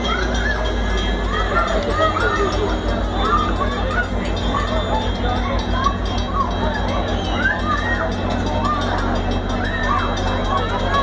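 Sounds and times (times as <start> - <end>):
crowd chatter: 0.0 - 11.0
train rumbling: 0.0 - 11.0.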